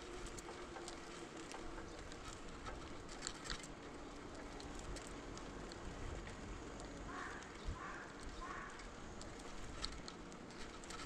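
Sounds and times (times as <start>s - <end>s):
bicycle tyre and road noise: 0.0s - 11.0s
light clicks and rattles: 0.0s - 11.0s.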